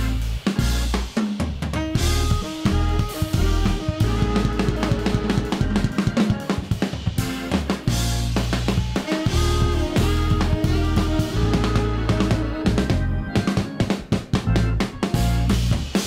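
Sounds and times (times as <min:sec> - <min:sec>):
drum kit playing: 0:00.0 - 0:16.0
jazz-funk band playing: 0:00.0 - 0:16.0.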